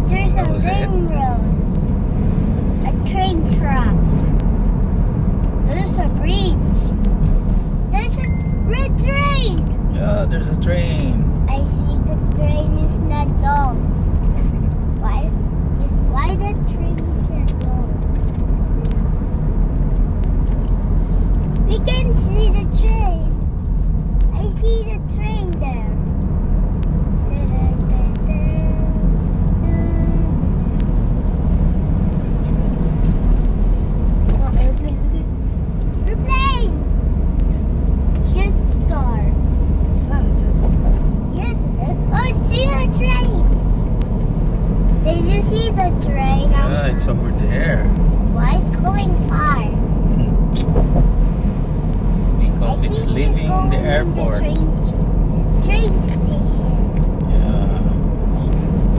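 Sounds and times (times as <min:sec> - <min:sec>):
voices: 0:00.0 - 0:01.6, 0:05.6 - 0:07.0, 0:07.9 - 0:14.0, 0:15.0 - 0:18.0, 0:21.6 - 0:23.4, 0:24.3 - 0:26.0, 0:36.0 - 0:37.0, 0:38.2 - 0:43.6, 0:44.9 - 0:50.8, 0:52.4 - 0:58.8
car tyres and engine rumble: 0:00.0 - 0:58.9.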